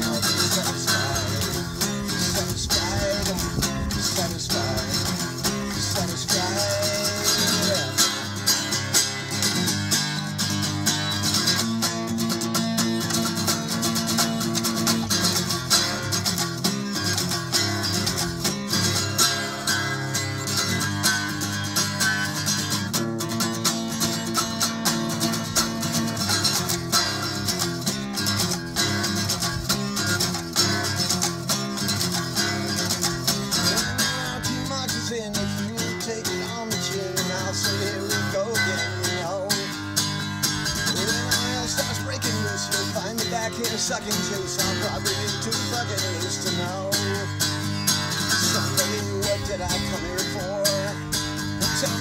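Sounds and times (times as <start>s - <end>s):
acoustic guitar strummed: 0.0s - 52.0s.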